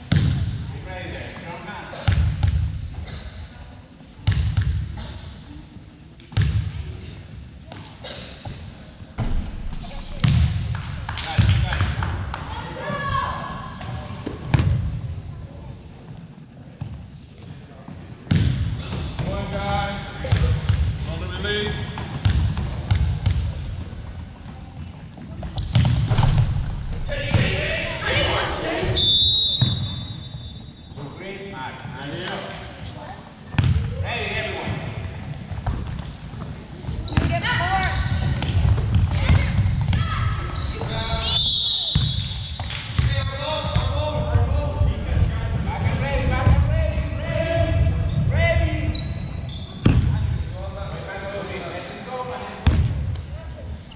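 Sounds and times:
voices calling out echoing: 0:26.9 - 0:53.9.

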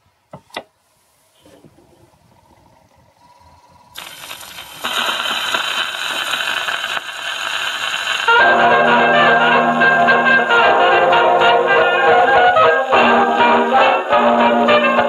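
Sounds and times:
record surface hiss and crackle: 0:00.0 - 0:15.0
dance band brass music: 0:08.3 - 0:15.0.

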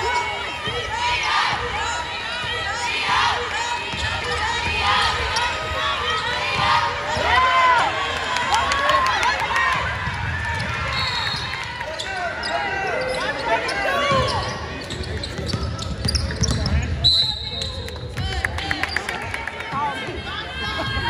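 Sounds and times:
referee's whistle: 0:10.8 - 0:13.3, 0:13.9 - 0:18.1
shoes squeaking on hardwood court: 0:11.0 - 0:17.7.

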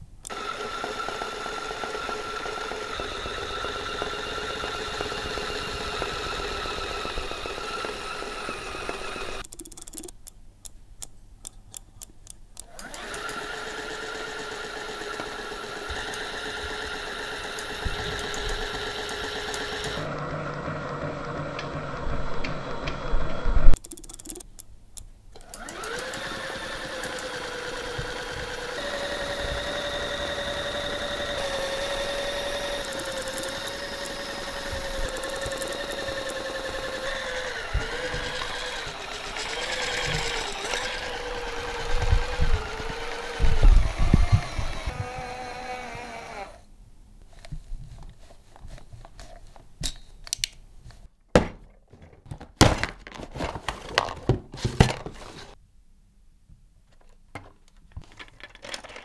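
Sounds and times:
small electric motor whining: 0:00.3 - 0:09.4, 0:12.7 - 0:23.8, 0:25.5 - 0:46.7.

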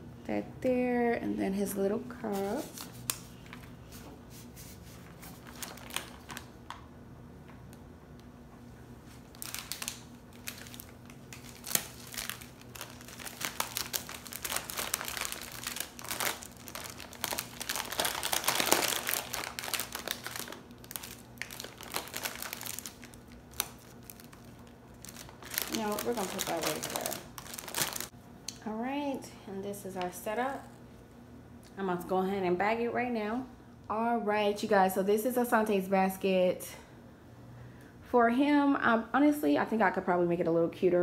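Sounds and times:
plastic packaging crinkling: 0:04.9 - 0:06.8, 0:09.1 - 0:28.1.

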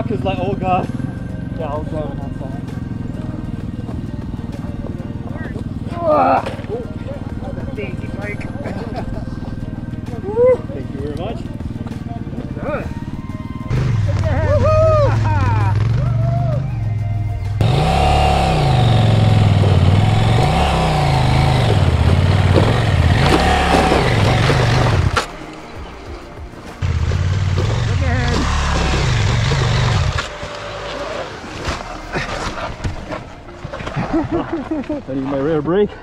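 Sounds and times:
motorcycle engine revving: 0:00.0 - 0:25.4, 0:26.8 - 0:33.3
tyre spinning and throwing stones: 0:21.7 - 0:25.4.

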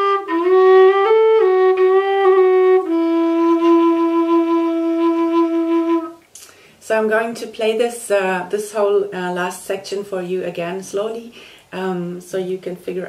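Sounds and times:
low whistle melody: 0:00.0 - 0:06.2.

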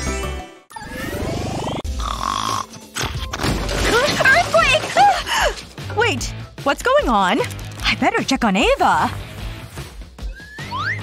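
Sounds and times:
cartoon snore: 0:01.4 - 0:02.8.

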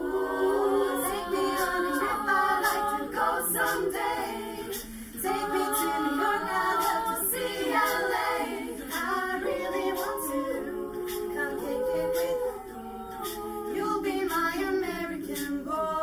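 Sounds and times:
women's a cappella choir singing: 0:00.0 - 0:16.0.

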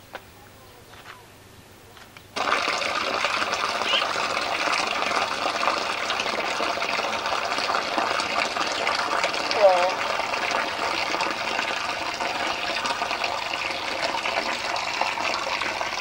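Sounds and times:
water pouring and splashing: 0:02.4 - 0:16.0.

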